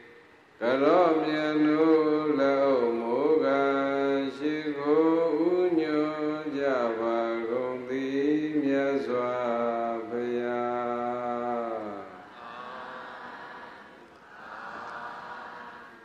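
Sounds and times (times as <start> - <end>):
man chanting into a microphone: 0.6 - 12.6.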